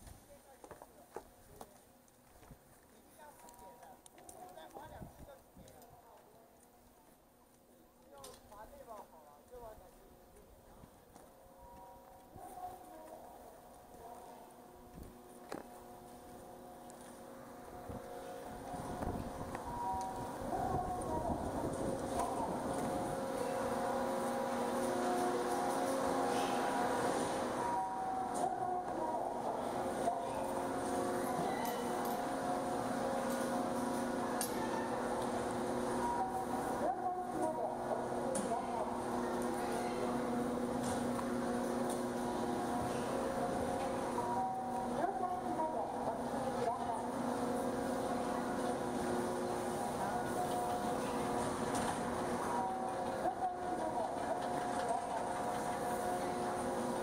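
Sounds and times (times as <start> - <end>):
chairlift machinery hum: 11.1 - 57.0
machinery whining tones: 15.3 - 57.0.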